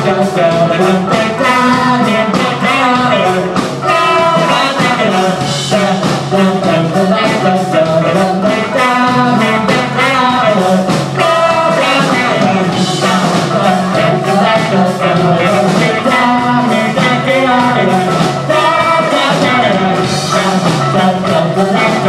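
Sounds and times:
live rock band playing: 0.0 - 22.0
sung vocals: 0.0 - 22.0.

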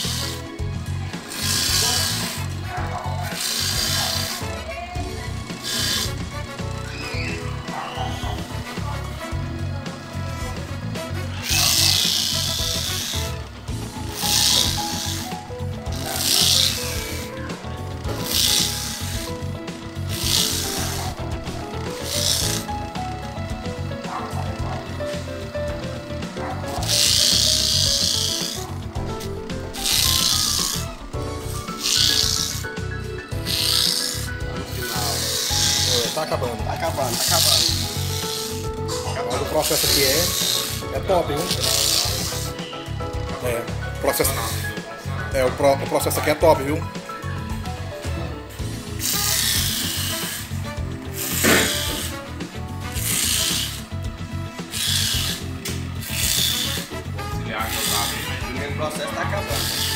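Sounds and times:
corn grater scraping: 0.0 - 9.4, 10.2 - 46.7, 48.5 - 54.0, 54.6 - 59.9
electric motor humming: 0.0 - 59.9.

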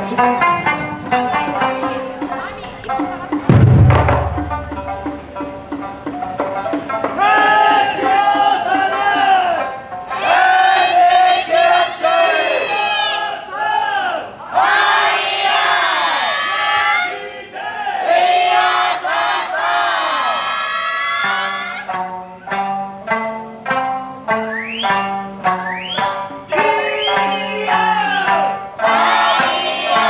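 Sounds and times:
plucked string melody: 0.0 - 10.5, 21.7 - 30.0
group shouting short calls: 26.6 - 28.6.

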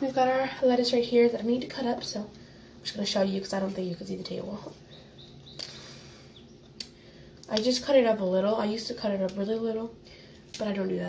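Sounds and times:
faint high chirps: 4.7 - 6.9.

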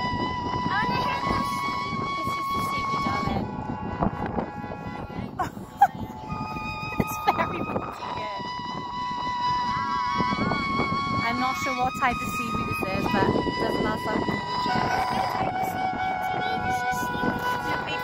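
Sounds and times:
sustained synthesized tones: 0.0 - 18.0
wind noise on microphone: 0.0 - 18.0.

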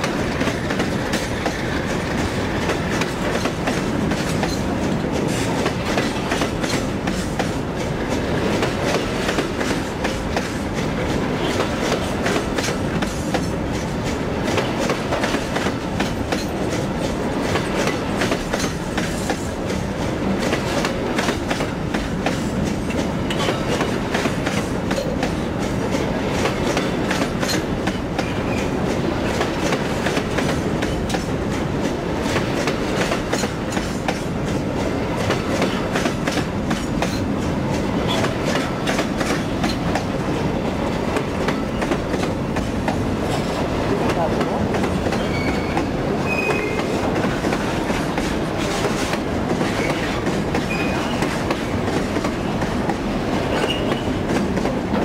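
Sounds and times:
train wagons rumbling past: 0.0 - 55.0
wheels clacking over rail joints: 0.0 - 55.0
high squeaks: 45.2 - 46.8.

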